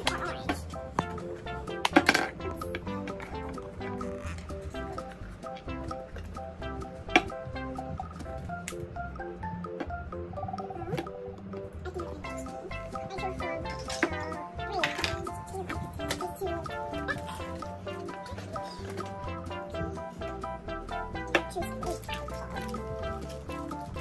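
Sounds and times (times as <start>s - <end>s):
background music: 0.0s - 24.0s.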